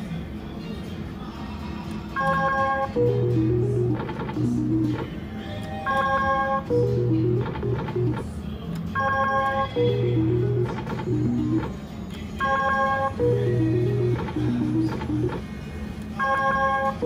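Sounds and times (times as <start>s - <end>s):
slot machine electronic spin sounds: 2.2s - 8.3s, 9.0s - 15.5s, 16.2s - 17.0s.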